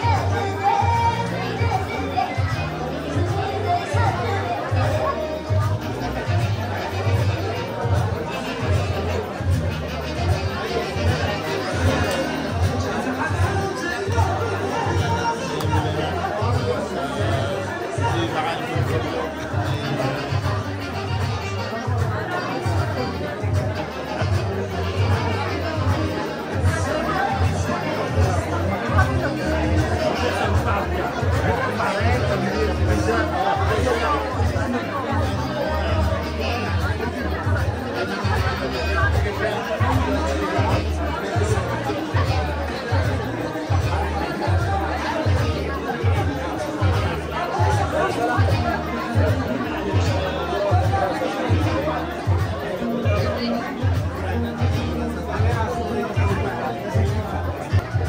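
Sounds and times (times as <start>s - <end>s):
crowd chatter: 0.0s - 58.0s
music with steady bass beat: 0.0s - 58.0s.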